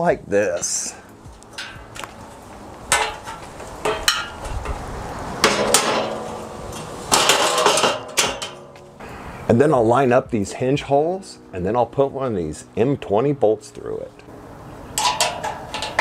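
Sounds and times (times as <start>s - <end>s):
metal frame clanking: 1.5s - 4.8s, 5.4s - 9.0s, 14.9s - 16.0s.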